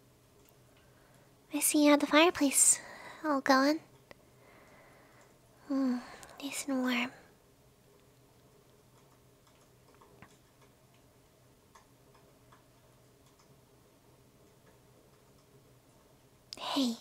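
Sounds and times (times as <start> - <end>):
wood fire crackling: 0.0 - 16.6
low steady hum: 0.0 - 17.0.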